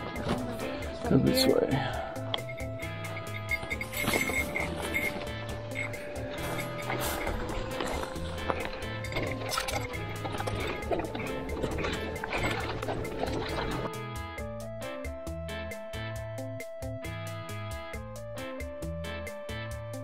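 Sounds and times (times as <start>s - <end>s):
footsteps on dirt trail: 0.0s - 13.9s
background music with bass line: 0.0s - 20.0s
trekking poles clicking: 2.2s - 13.9s.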